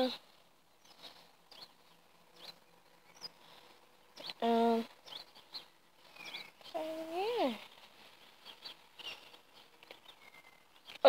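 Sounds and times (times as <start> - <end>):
distant birds chirping: 0.0 - 11.0.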